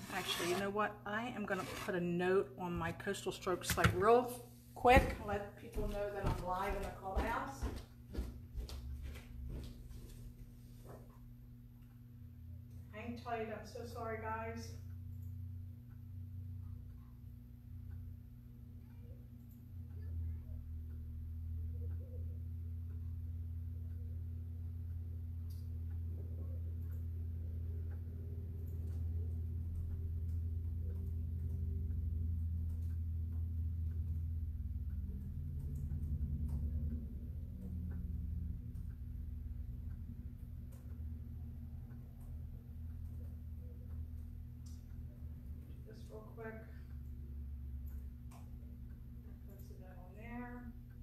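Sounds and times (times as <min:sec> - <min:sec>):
low steady hum: 0:00.0 - 0:51.0
faint ticks and clicks: 0:14.7 - 0:51.0.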